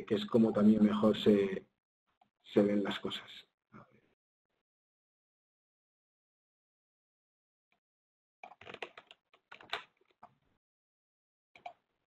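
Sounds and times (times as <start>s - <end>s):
computer keyboard keystrokes: 8.4s - 9.9s.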